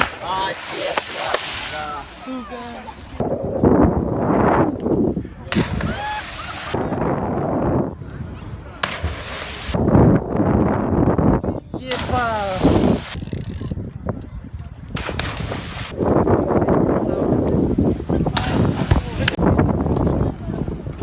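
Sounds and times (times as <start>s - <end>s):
people chattering: 0.0s - 3.2s, 4.9s - 15.6s
water noise: 0.0s - 21.0s.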